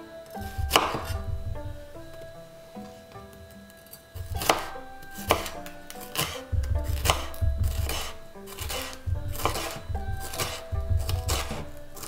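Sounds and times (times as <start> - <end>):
knife chopping on wooden board: 0.4 - 2.3, 4.2 - 12.0.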